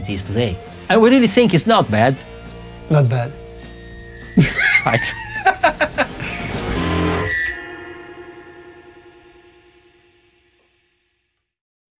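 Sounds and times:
electric guitar chord ringing: 1.7s - 11.3s.

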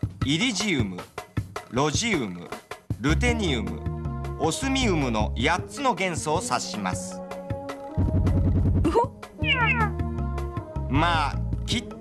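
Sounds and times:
background music: 0.0s - 12.0s
falling electronic chirps: 9.4s - 9.9s.

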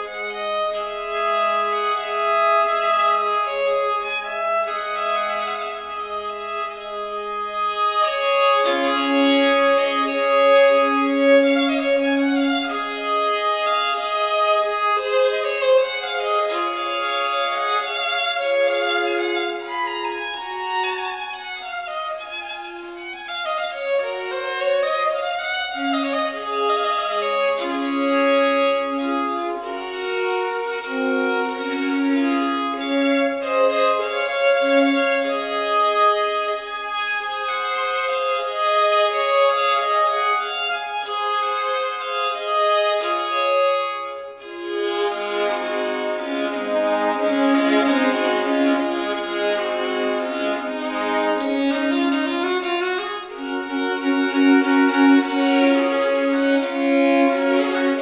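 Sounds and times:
violin melody: 0.0s - 58.0s.

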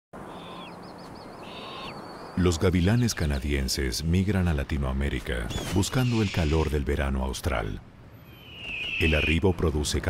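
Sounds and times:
hawk cries: 1.4s - 2.0s, 8.3s - 9.4s
warbling chirp: 8.2s - 9.4s.

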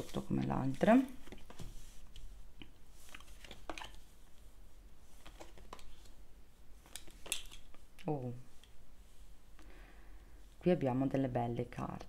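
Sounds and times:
cards sliding and tapping: 1.2s - 4.0s, 5.2s - 6.2s.

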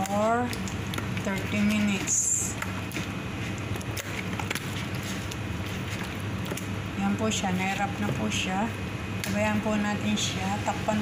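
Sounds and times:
low background hum: 0.0s - 11.0s
hand rubbing marinade squelches: 0.1s - 7.9s.

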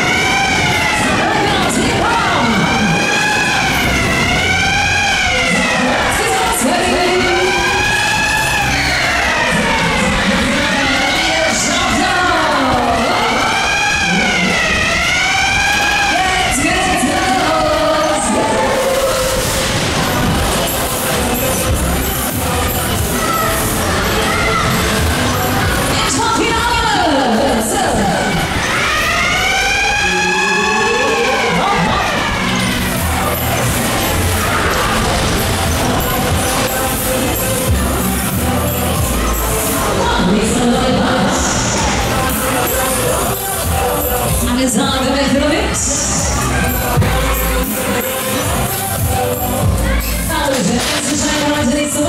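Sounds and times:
wailing siren sound effect: 0.0s - 44.2s
loud music over loudspeakers: 0.0s - 52.0s.

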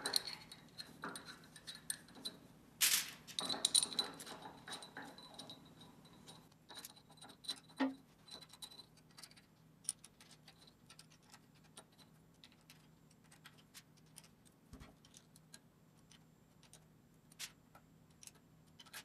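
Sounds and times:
metal plate and screws clinking: 0.0s - 12.7s.

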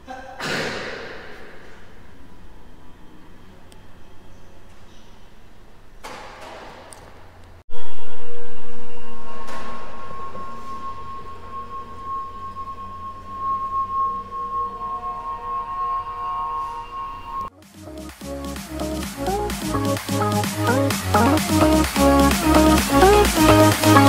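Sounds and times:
resonant bell-like tone: 7.7s - 17.5s.

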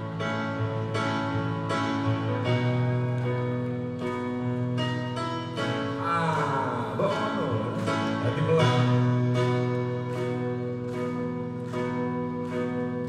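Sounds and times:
keyboard playing sustained chords: 0.0s - 13.0s.

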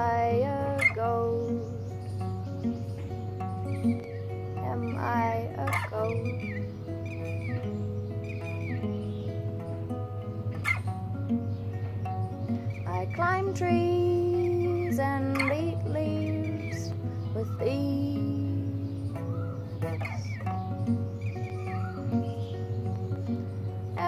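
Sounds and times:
woman singing wordlessly: 0.0s - 2.2s, 4.6s - 6.8s, 12.8s - 21.0s
acoustic guitar playing: 0.0s - 24.0s.

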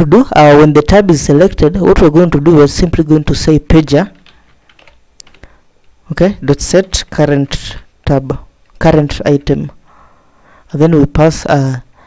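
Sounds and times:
keyboard key clicks: 4.2s - 5.5s.

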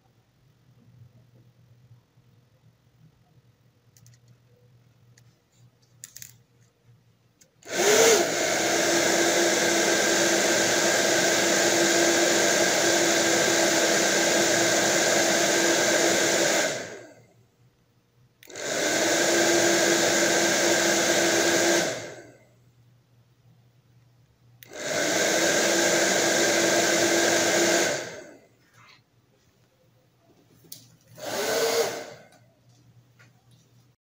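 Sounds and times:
hair dryer blowing: 7.6s - 17.2s, 18.4s - 22.4s, 24.6s - 28.5s, 31.2s - 32.4s.

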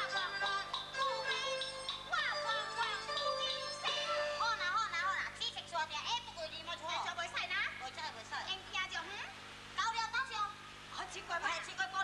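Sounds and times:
instrumental accompaniment: 0.0s - 4.8s.

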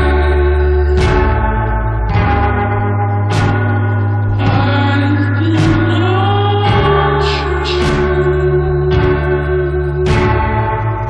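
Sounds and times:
choir-like chords over bass: 0.0s - 11.0s.

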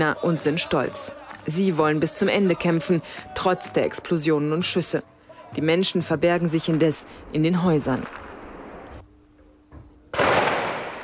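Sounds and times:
explosion blast with echo: 8.0s - 8.8s, 10.2s - 11.0s.

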